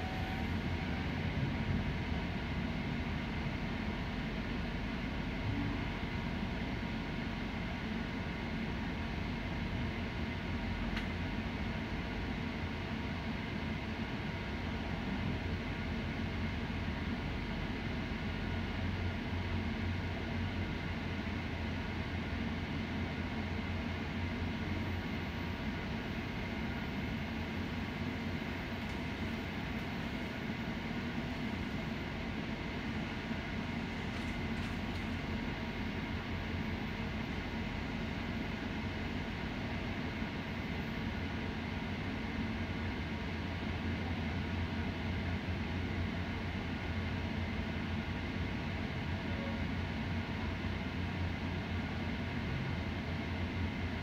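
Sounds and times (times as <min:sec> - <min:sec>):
train rumbling inside coach: 0:00.0 - 0:54.0.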